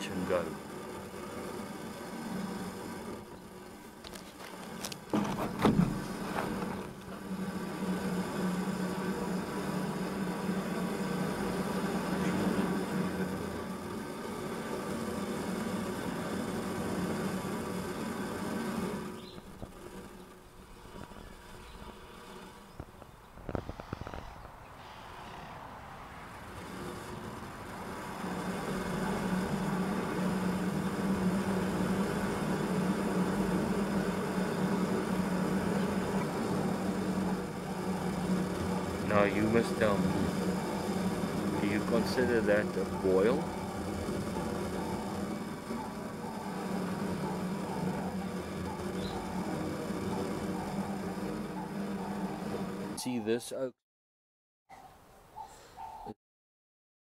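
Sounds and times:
water in kettle hissing and rumbling: 0.0s - 24.5s, 26.1s - 53.1s.

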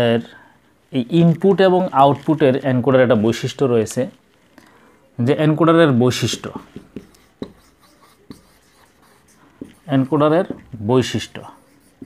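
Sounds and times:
marker scratching on whiteboard: 6.1s - 12.0s
marker tapping whiteboard: 6.2s - 10.8s.

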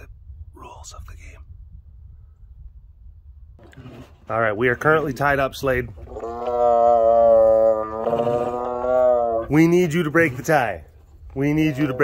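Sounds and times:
tiger calling: 6.0s - 10.7s, 11.4s - 12.0s.

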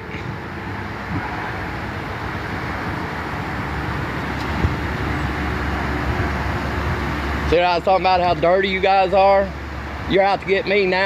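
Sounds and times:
road traffic: 0.0s - 11.0s.

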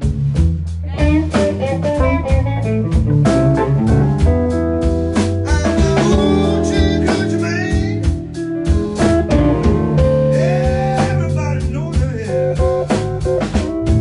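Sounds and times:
blues band playing: 0.0s - 14.0s.

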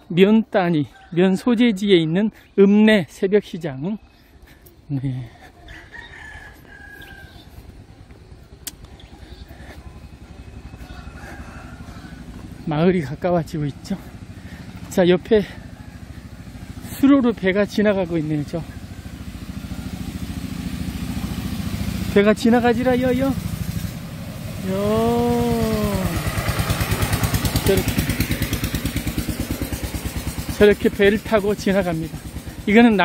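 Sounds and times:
rooster crowing: 5.7s - 7.7s, 10.4s - 12.6s
small boat engine running: 7.5s - 33.0s.

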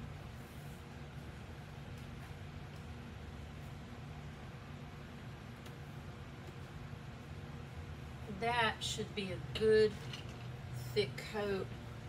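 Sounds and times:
electric fan humming: 0.0s - 12.0s.

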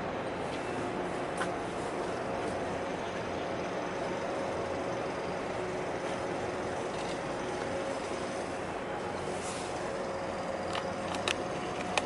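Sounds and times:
faint machinery tones: 0.0s - 12.0s
ship passing drone: 0.0s - 12.0s.

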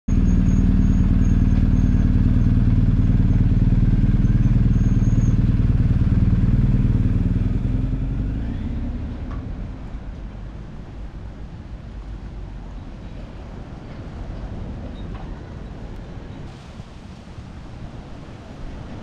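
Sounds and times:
motorcycle engine running: 0.1s - 9.4s.

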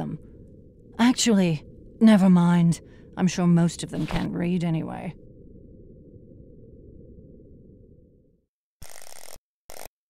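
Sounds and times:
deep space ambience drone: 0.0s - 8.5s.

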